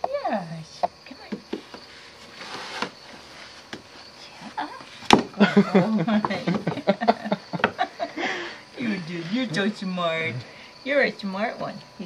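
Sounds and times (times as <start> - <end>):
faint rustling: 1.2 - 5.2.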